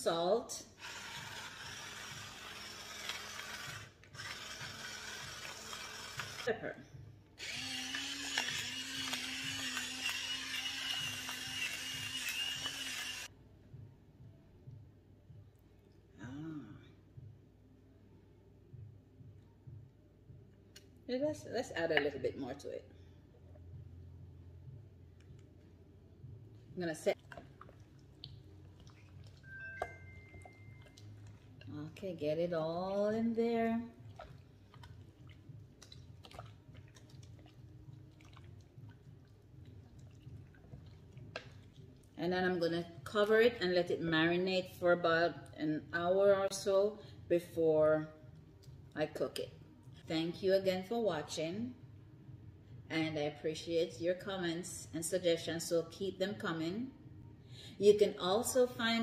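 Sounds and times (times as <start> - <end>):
salt grinder grinding: 0.8 - 6.5, 7.4 - 13.3
wet squishing of chicken: 27.2 - 29.5, 34.0 - 42.2
thin high tone: 29.4 - 31.0.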